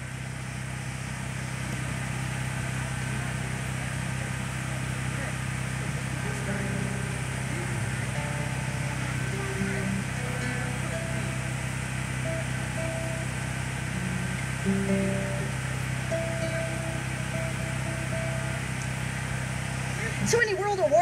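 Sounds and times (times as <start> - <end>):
steady low hum: 0.0 - 21.0
acoustic guitar single notes: 5.3 - 20.7.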